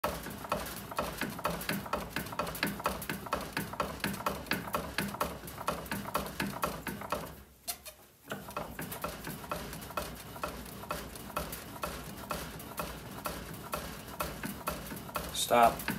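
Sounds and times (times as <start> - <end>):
bat rolling machine clicking: 0.0 - 7.4, 8.3 - 15.9.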